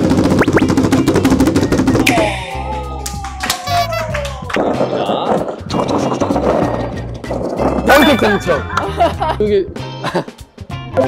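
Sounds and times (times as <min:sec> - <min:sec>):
background music: 0:00.3 - 0:11.0
loud voiced exclamation: 0:02.1 - 0:04.5.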